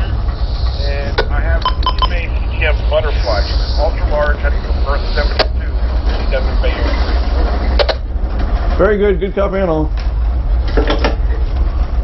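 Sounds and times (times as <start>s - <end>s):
boat diesel engines droning: 0.0s - 12.0s.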